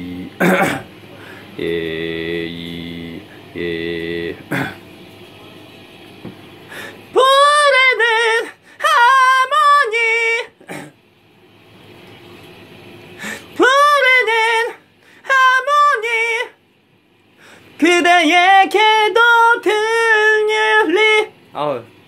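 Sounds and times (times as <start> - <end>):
person singing unaccompanied: 0.0 - 0.8, 1.5 - 4.8, 7.1 - 10.8, 13.2 - 16.6, 17.8 - 21.4.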